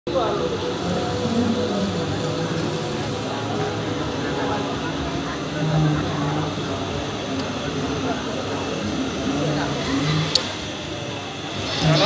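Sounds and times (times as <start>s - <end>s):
indistinct voices: 0.1s - 12.0s.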